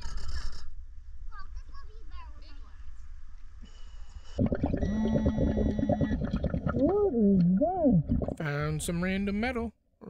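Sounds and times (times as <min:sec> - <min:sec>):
underwater regulator bubbling: 0:04.4 - 0:08.4.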